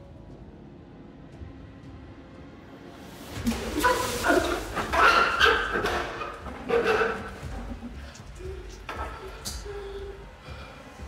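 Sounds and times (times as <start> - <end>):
water splashing from bucket: 3.4 - 7.4.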